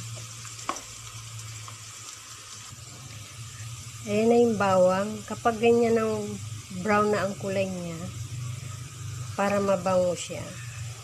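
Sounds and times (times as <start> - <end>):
garlic sizzling in hot oil: 0.0 - 11.0.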